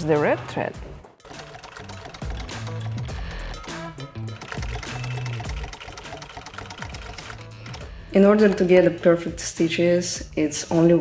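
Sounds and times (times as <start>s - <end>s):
background music: 0.0s - 11.0s
sewing machine stitching leather: 1.2s - 8.8s.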